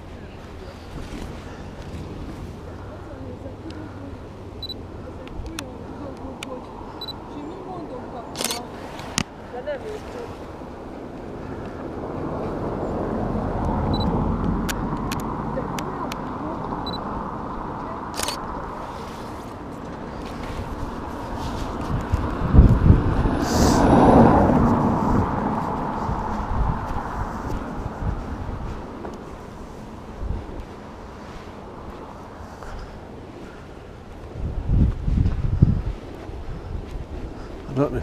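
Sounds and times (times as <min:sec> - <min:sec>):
vehicle passing: 0:00.0 - 0:38.0.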